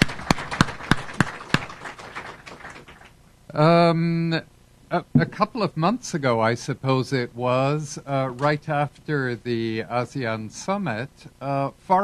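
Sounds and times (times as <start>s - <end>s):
fainter background clapping: 0.0s - 3.2s
sharp hand claps: 0.0s - 3.2s.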